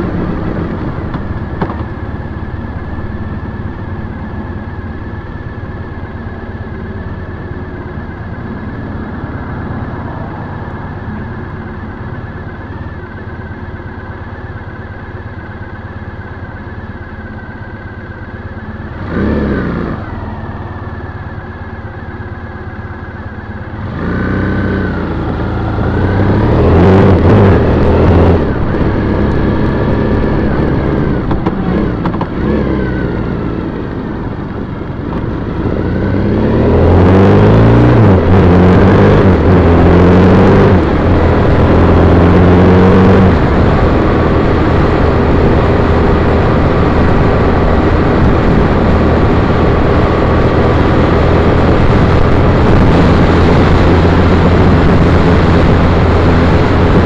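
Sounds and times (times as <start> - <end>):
motorcycle accelerating: 0.0 - 57.0
wind noise: 23.8 - 57.0.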